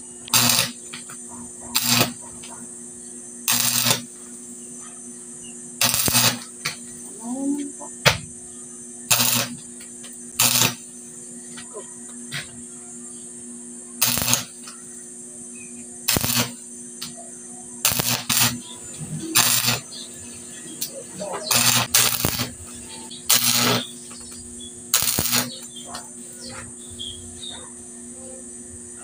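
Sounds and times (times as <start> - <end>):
welding arc crackling: 0.0 - 2.5, 3.4 - 4.4, 5.8 - 7.0, 9.1 - 11.0, 14.0 - 14.9, 16.0 - 17.1, 17.8 - 27.0.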